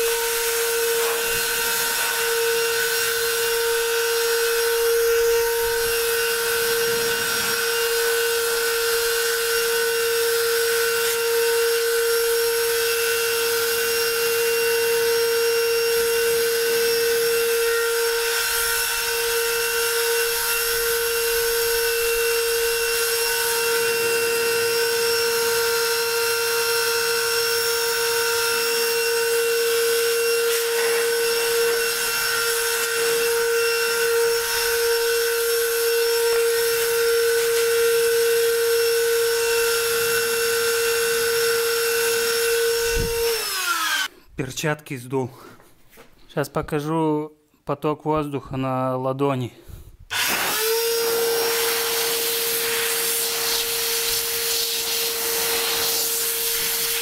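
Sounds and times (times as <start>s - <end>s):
vacuum motor high whine: 0.0s - 44.1s, 50.1s - 57.0s.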